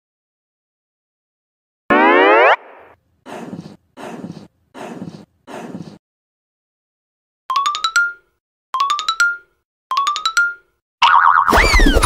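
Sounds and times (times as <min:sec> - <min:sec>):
short rough puffs: 0:03.3 - 0:06.0.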